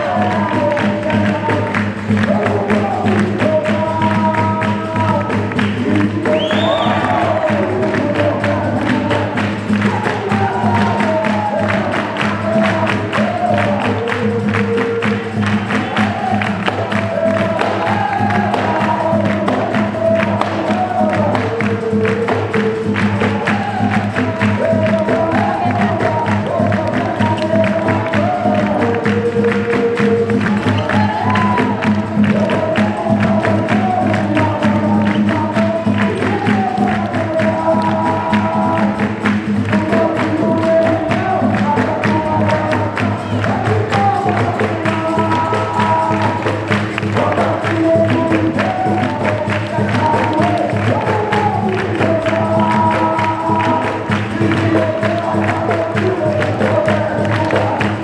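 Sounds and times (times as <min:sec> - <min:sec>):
berimbau and drum rhythm: 0:00.0 - 0:58.0
call-and-response singing: 0:00.0 - 0:58.0
people clapping along: 0:00.0 - 0:58.0.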